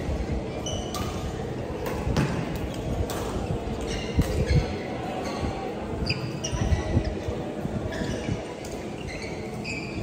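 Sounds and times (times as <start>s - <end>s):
court shoes squeaking: 0.0s - 10.0s.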